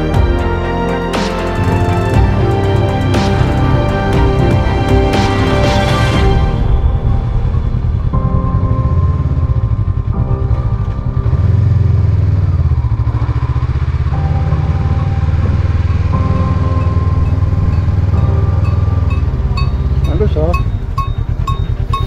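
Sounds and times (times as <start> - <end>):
background music with held chords: 0.0 - 22.0
motorcycle engine rumbling: 0.0 - 22.0.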